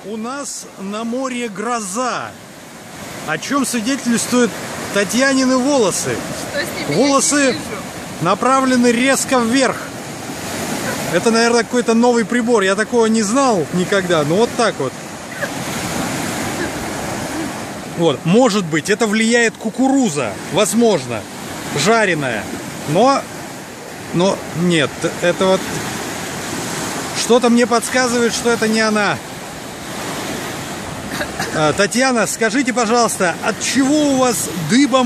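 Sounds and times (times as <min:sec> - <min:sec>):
sea surf breaking on shore: 0:00.0 - 0:35.0.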